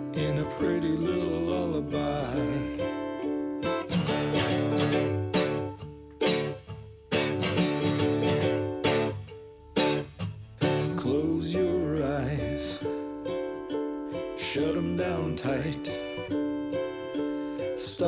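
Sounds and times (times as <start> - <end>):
person singing: 0.0 - 5.7, 10.6 - 18.0
ukulele strumming chords: 0.0 - 18.0.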